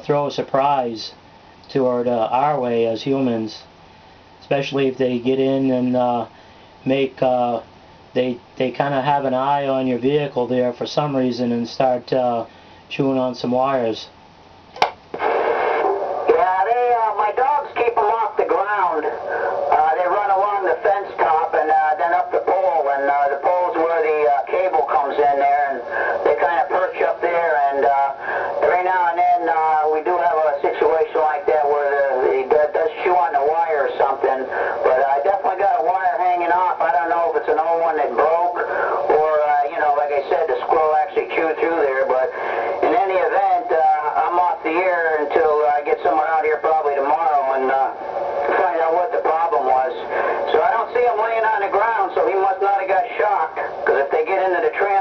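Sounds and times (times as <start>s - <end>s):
man's voice over radio speaker: 0.0s - 3.8s, 4.4s - 14.2s, 15.2s - 55.0s
radio click: 14.7s - 16.5s, 48.4s - 49.4s.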